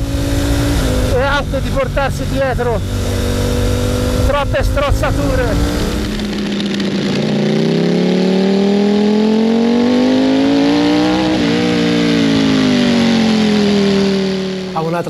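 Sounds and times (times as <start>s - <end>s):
motorcycle engine accelerating: 0.0s - 15.0s.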